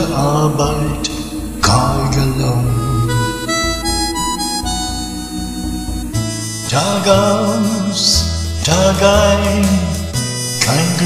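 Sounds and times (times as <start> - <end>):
man singing a long note: 0.0 - 10.0, 10.6 - 11.0
karaoke accompaniment: 0.0 - 11.0.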